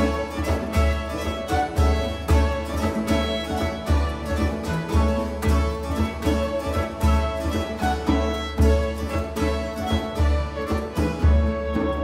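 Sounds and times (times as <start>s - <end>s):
baroque chamber ensemble: 0.0s - 12.0s
bowed strings: 0.0s - 12.0s
plucked guitar: 0.0s - 12.0s.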